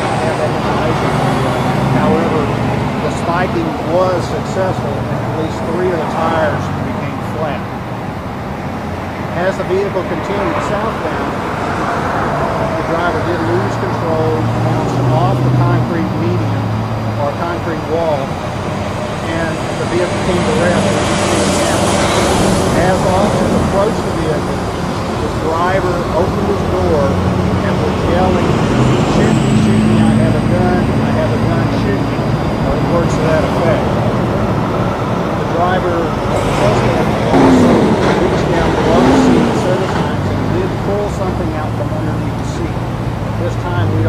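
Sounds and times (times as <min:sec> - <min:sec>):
man speaking: 0:00.0 - 0:07.6, 0:09.3 - 0:11.4, 0:12.8 - 0:18.3, 0:19.2 - 0:33.9, 0:35.4 - 0:42.8, 0:43.4 - 0:44.0
people talking indistinctly: 0:00.0 - 0:07.7, 0:09.3 - 0:11.4, 0:12.7 - 0:18.3, 0:19.2 - 0:34.1, 0:35.3 - 0:42.8, 0:43.4 - 0:44.0
idling vehicles humming: 0:00.0 - 0:44.0
road traffic rumble: 0:00.0 - 0:44.0.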